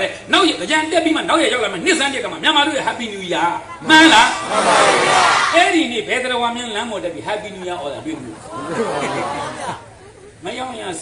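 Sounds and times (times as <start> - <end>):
group chatter: 3.6 - 5.6, 7.4 - 10.6.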